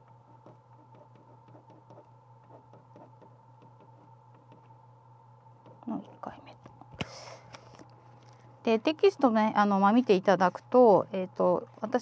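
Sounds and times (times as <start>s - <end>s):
pen tapping on paper: 0.3s - 4.7s.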